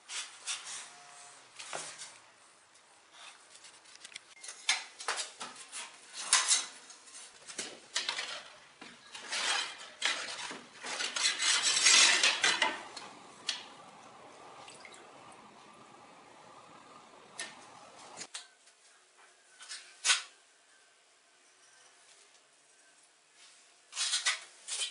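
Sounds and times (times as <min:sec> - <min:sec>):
ceramic tiles clinking and scraping: 0:09.2 - 0:13.3.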